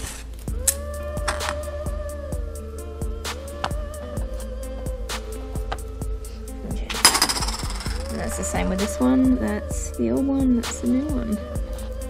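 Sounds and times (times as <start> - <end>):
background music with beat: 0.4 - 12.0.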